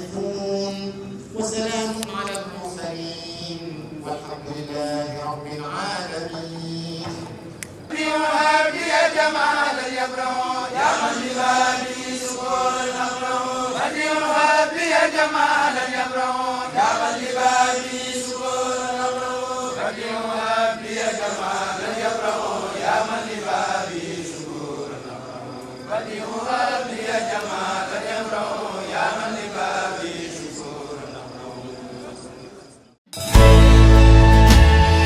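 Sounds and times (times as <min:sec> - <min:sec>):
men chanting in unison: 0:00.0 - 0:32.7.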